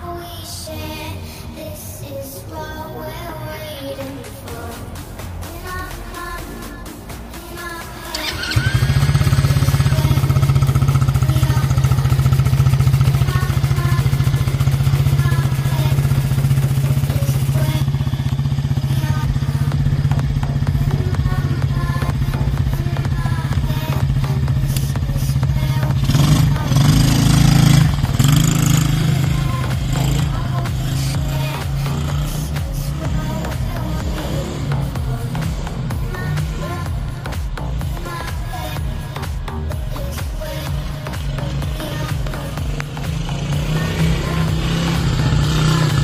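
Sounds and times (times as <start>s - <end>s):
small quad engine idling and revving: 0.9s - 46.0s.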